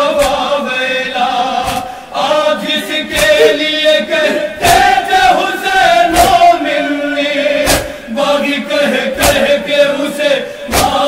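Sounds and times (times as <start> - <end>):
group chest-beating strikes: 0.0 - 0.6, 1.6 - 2.1, 3.1 - 5.3, 6.0 - 6.6, 7.6 - 8.2, 9.1 - 9.8, 10.5 - 11.0
men chanting a lament: 0.0 - 11.0.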